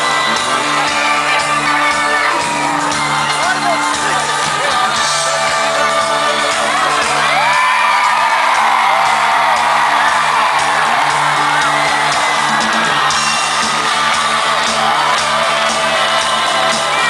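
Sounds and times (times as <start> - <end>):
crowd whooping and cheering: 0.0 - 17.0
live pop-rock band playing: 0.0 - 17.0.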